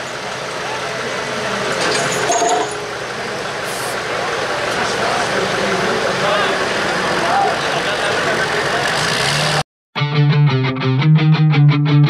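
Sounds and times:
crowd voices: 0.0s - 9.6s
diesel truck engine idling: 0.0s - 9.6s
rock music with electric guitar: 10.0s - 12.0s.

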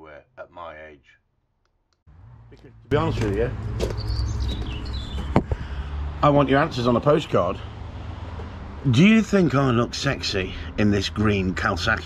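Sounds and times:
small bird chirping: 3.9s - 5.4s.

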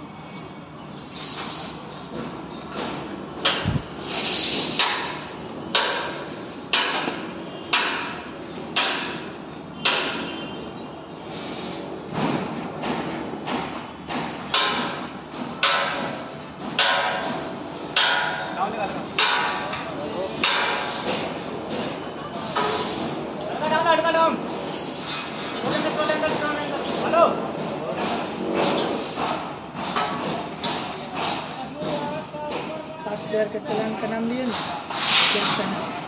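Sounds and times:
hammer blows on steel: 4.6s - 10.7s.

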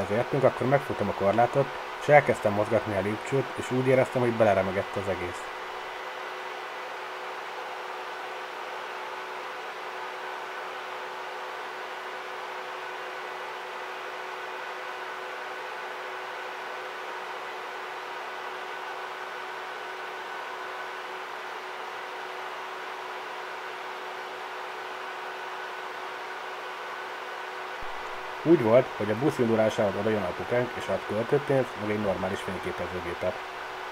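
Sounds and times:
mechanical hum and hiss: 0.0s - 33.9s.

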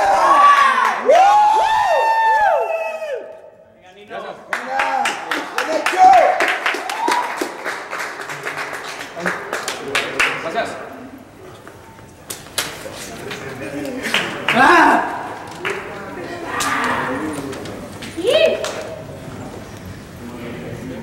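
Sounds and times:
people clapping: 0.0s - 3.3s, 4.2s - 19.2s
loud shouting: 0.0s - 3.4s, 14.4s - 17.6s
voices: 9.0s - 21.0s.

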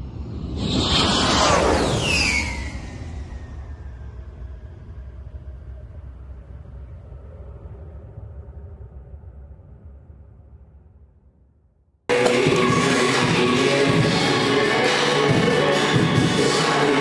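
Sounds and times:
deep rumble: 0.0s - 11.6s
high tone falling in pitch: 12.1s - 14.3s.

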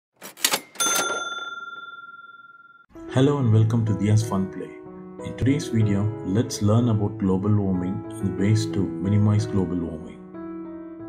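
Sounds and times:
bright bell ding: 0.6s - 2.8s.

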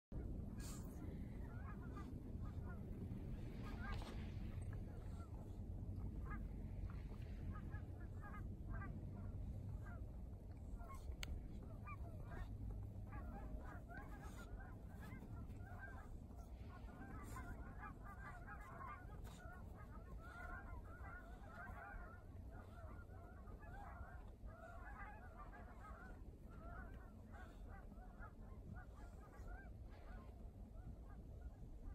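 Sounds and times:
steady low rumble: 0.1s - 31.9s
flock of birds calling: 0.6s - 5.4s, 6.1s - 10.0s, 10.7s - 31.9s.

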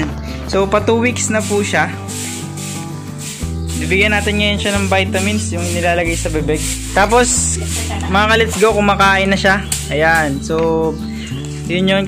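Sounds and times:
background music: 0.0s - 12.0s
broom bristles brushing floor: 1.2s - 10.4s.

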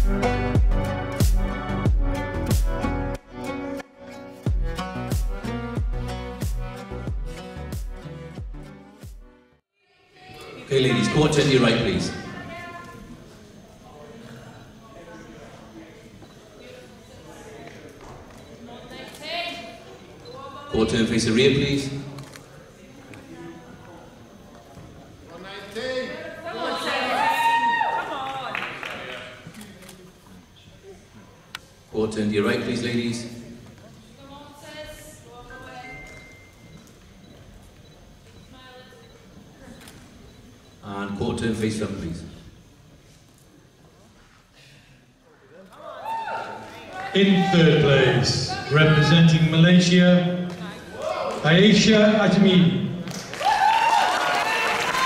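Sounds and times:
low murmur of voices: 9.9s - 20.8s, 21.9s - 31.9s, 33.2s - 40.8s.

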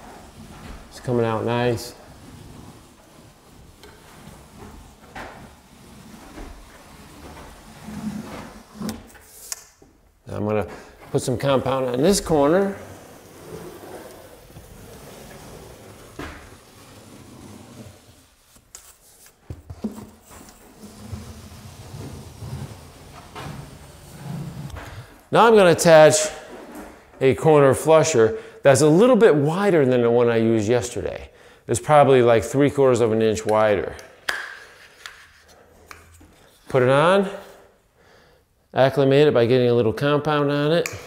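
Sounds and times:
applicator scraping along wall: 0.0s - 9.4s, 11.2s - 25.0s.

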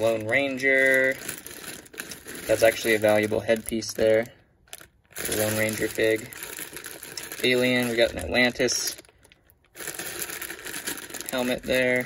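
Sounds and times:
plastic bag crinkling: 0.0s - 12.0s
small plastic pieces rattling: 0.0s - 12.0s.

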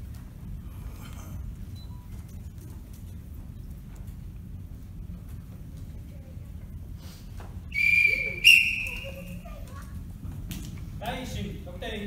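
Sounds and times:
referee's whistle blasts: 7.7s - 9.1s.

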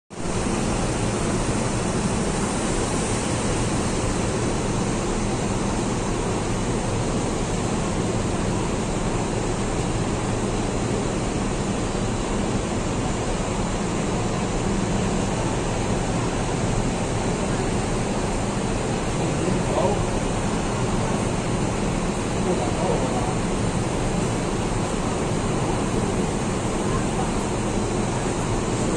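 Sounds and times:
bus engine idling: 0.2s - 28.9s.

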